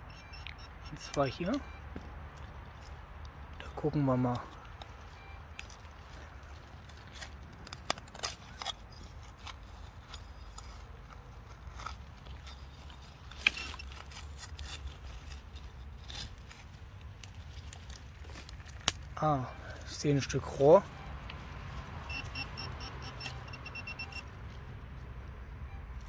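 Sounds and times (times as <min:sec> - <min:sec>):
trowel scraping soil and twigs: 0:03.7 - 0:20.9.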